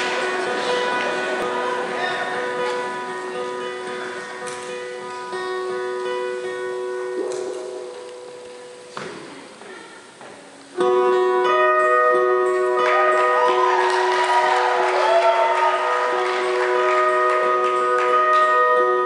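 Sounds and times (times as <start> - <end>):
electric guitars ringing: 0.0 - 9.0, 10.8 - 19.0.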